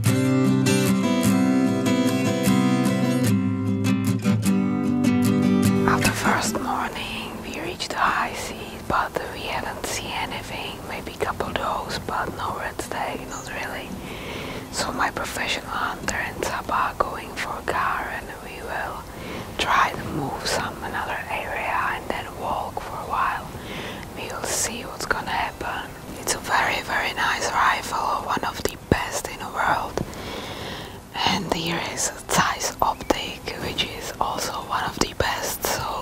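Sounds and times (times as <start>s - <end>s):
person whispering: 5.9s - 13.9s, 14.6s - 30.1s, 31.1s - 36.0s.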